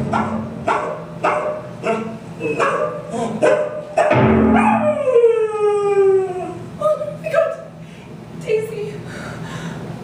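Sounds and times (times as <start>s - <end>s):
dog barking: 0.0s - 4.9s.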